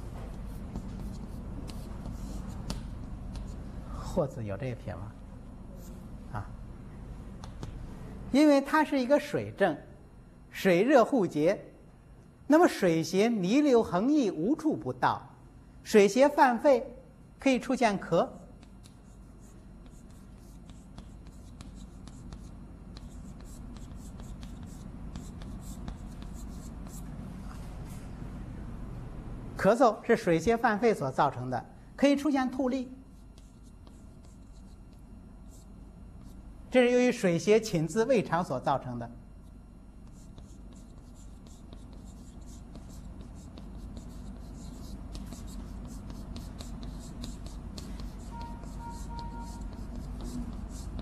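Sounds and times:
chalk tapping and scratching on blackboard: 0.0 - 3.6, 18.3 - 27.1, 33.1 - 36.4, 39.4 - 51.0.

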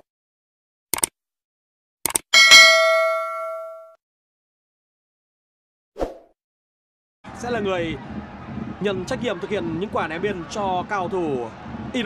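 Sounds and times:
bright bell ding: 2.4 - 4.0.

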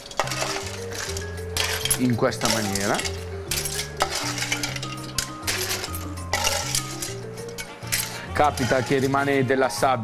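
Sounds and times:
clams clinking against metal pans: 0.0 - 9.5
background music: 0.0 - 10.0.

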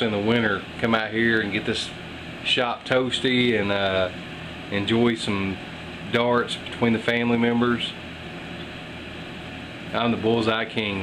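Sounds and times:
room hum with soft hiss: 0.0 - 11.0.

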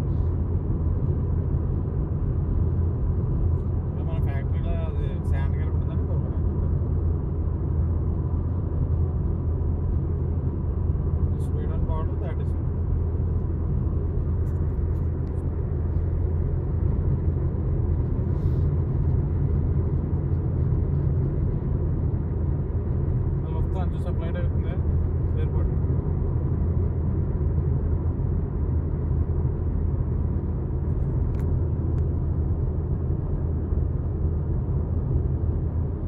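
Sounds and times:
car road and engine rumble: 0.0 - 36.0.

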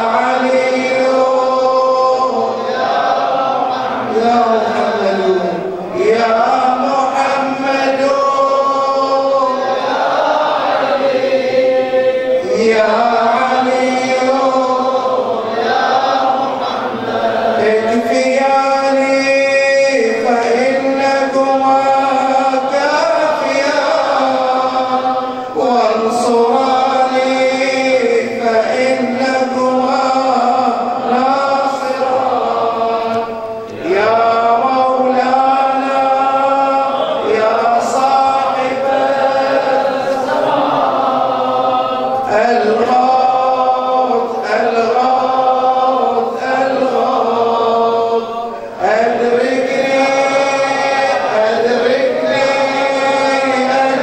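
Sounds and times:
man chanting melodically: 0.0 - 54.0.

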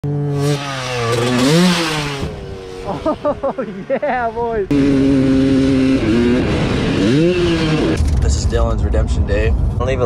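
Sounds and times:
dirt bike engine revving: 0.0 - 8.3.

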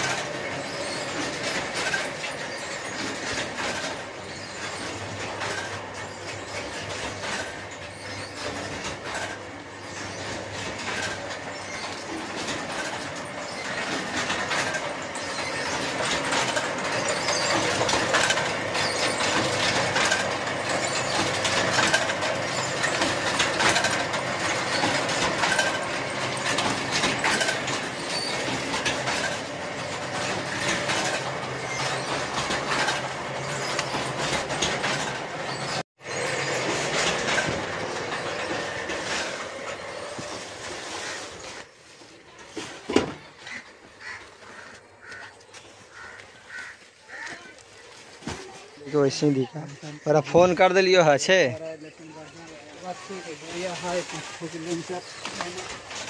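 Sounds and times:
machinery clattering: 0.0 - 47.3, 48.2 - 56.0.

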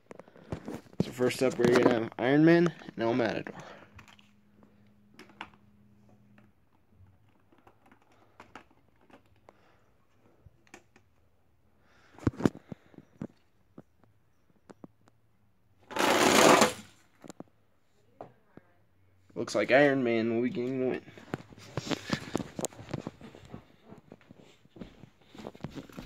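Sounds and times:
toy trucks rolling down track: 15.9 - 16.8.

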